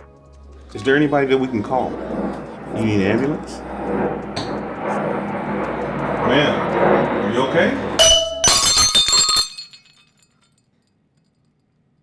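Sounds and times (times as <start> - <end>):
wine glass shattering on tile: 8.0 - 10.7
glass shards tinkling: 8.1 - 10.6.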